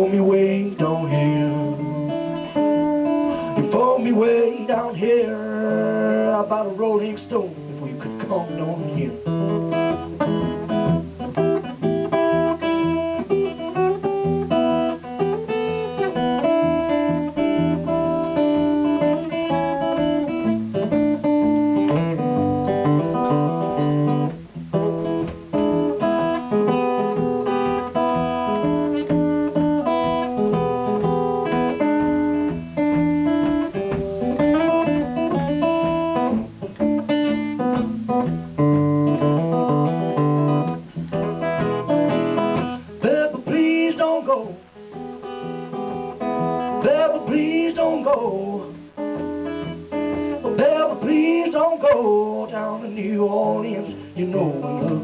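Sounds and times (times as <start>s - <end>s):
acoustic guitar strumming chords: 0.0s - 55.0s.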